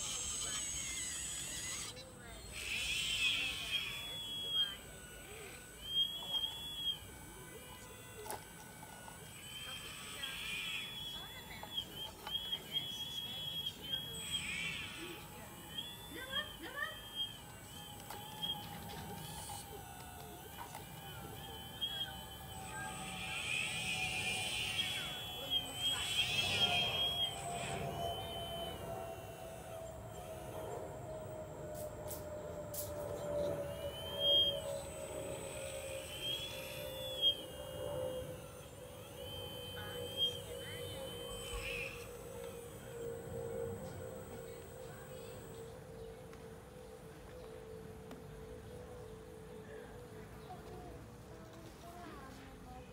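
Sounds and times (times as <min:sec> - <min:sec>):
small electric motors whining: 0:00.0 - 0:52.9.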